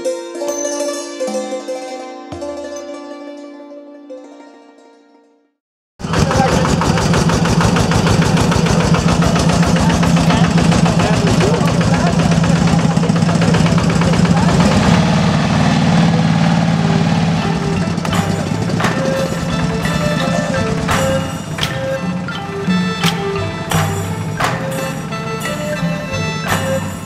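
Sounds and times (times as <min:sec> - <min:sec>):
road noise: 0:06.0 - 0:27.0
small vehicle engine running: 0:06.0 - 0:27.0.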